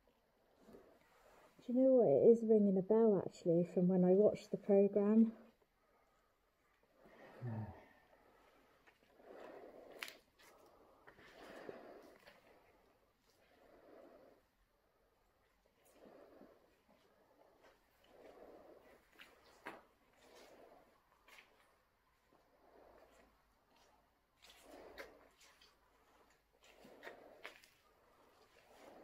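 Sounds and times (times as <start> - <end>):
faint slow breathing: 5.3 - 29.0.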